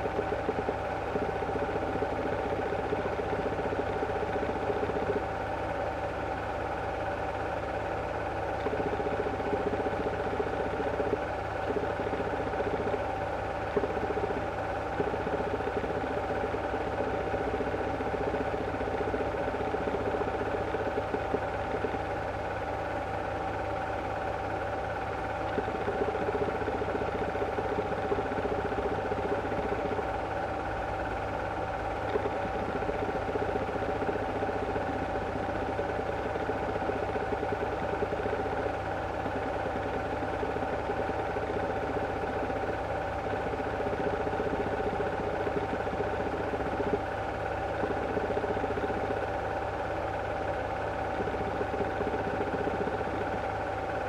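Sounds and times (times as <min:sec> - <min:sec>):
film projector whirring: 0:00.0 - 0:54.0
projector hum: 0:00.0 - 0:54.0.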